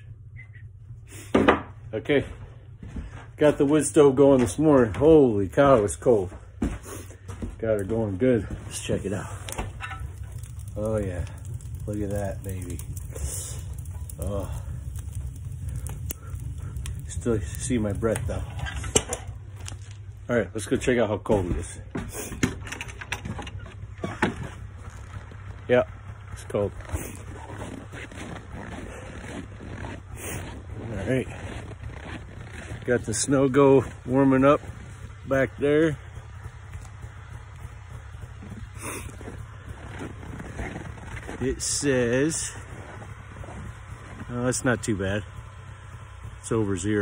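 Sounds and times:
log fire crackling: 0.0 - 47.0
low fire rumble: 0.0 - 47.0
snowmobile idling: 0.0 - 47.0.

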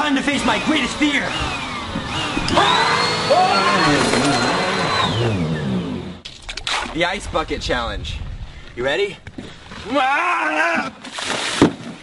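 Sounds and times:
vacuum cleaner motor whine: 0.4 - 6.2.

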